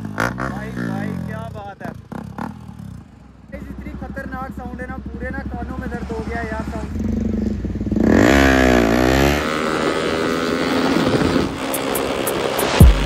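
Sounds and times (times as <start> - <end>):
motorcycle engine revving: 0.0 - 13.0.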